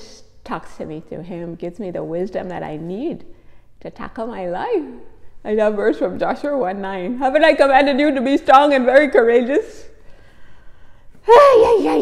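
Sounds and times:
woman exclaiming yeah: 0:11.3 - 0:12.0.

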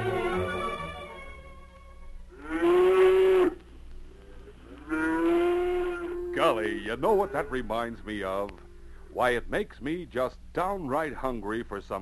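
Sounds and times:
cow mooing: 0:02.3 - 0:03.6, 0:04.8 - 0:06.5.

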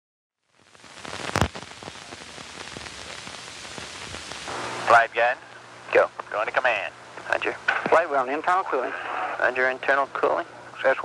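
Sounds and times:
film soundtrack hiss and crackle: 0:00.4 - 0:11.0
loud pop: 0:01.2 - 0:02.0.

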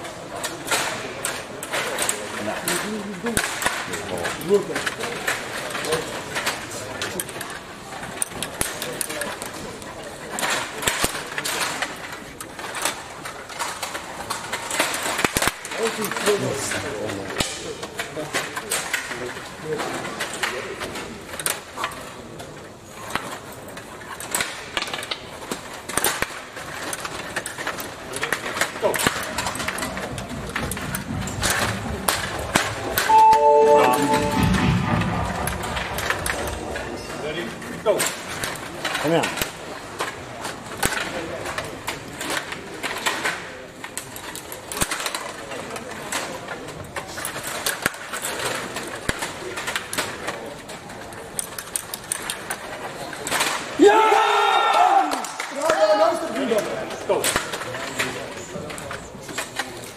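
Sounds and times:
table hockey clicks and knocks: 0:00.0 - 0:33.7, 0:37.6 - 0:54.1, 0:54.7 - 0:59.9
brief ringing tone: 0:33.0 - 0:35.5.

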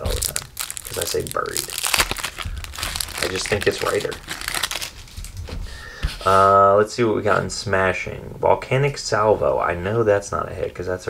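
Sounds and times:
plastic wrapper crinkling: 0:00.0 - 0:05.6.

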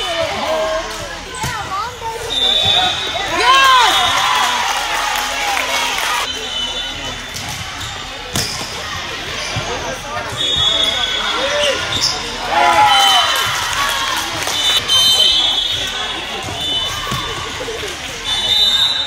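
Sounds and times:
voices in a gym: 0:00.0 - 0:19.0.

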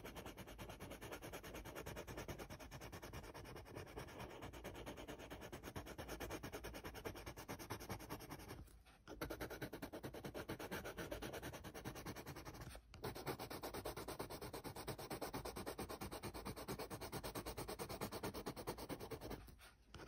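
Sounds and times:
pencil scratching on paper: 0:00.0 - 0:20.0.

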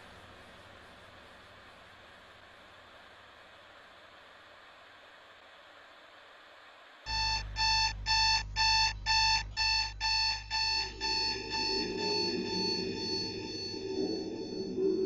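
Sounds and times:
alarm clock beeping: 0:07.1 - 0:15.0
low drone: 0:09.8 - 0:15.0.

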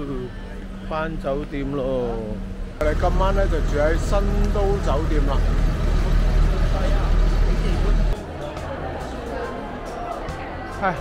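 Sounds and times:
city street traffic rumble: 0:00.0 - 0:08.3
large vehicle engine running: 0:02.6 - 0:08.2.

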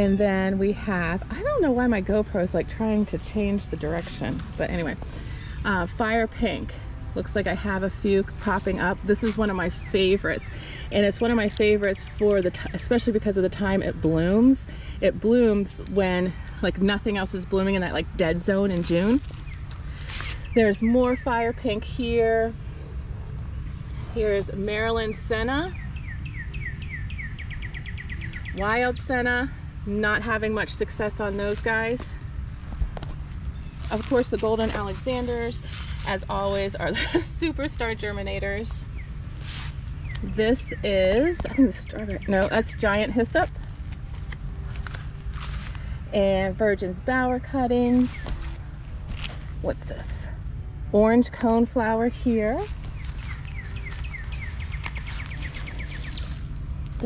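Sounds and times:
low steady rumble: 0:00.0 - 0:57.0
songbird trilling: 0:25.0 - 0:29.1, 0:52.2 - 0:56.5.

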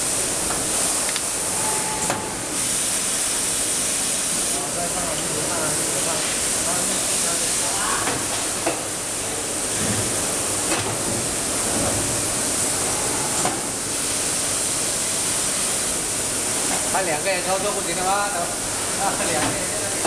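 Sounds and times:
machinery hissing: 0:00.7 - 0:10.6.

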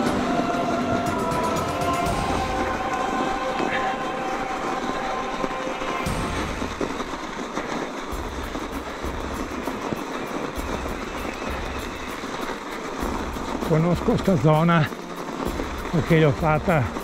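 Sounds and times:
bike tyres rumbling on snow: 0:00.0 - 0:17.0
rapid clatter of ticks: 0:04.6 - 0:17.0.

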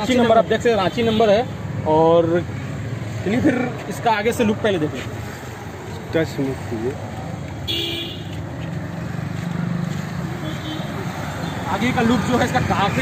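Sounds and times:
roadside traffic noise: 0:00.0 - 0:13.0
vehicle horn toot: 0:07.7 - 0:08.3, 0:10.4 - 0:11.0.

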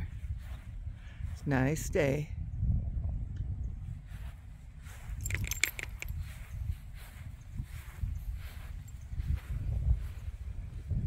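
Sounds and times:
dog collar tags jingling: 0:04.9 - 0:06.8, 0:08.1 - 0:09.2.

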